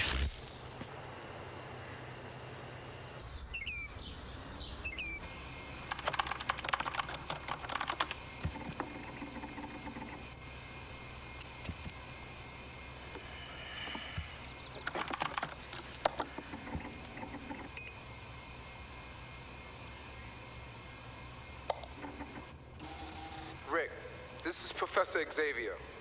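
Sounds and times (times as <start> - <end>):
low steady hum: 0.0 - 26.0
keyboard typing: 5.8 - 10.4, 14.8 - 17.8.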